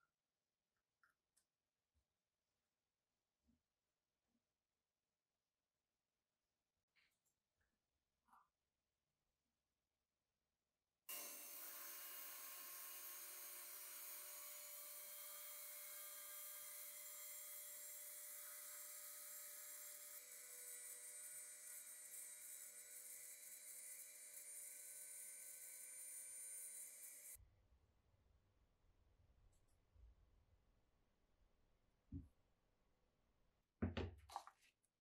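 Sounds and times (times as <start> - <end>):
rotary tool sanding leather: 11.1 - 27.4.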